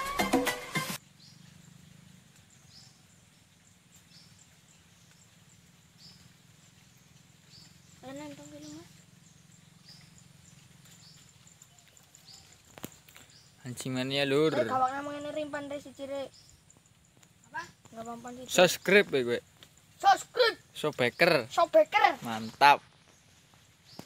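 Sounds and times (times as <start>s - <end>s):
music: 0.0s - 1.0s
high falling bird chirp: 1.0s - 24.0s.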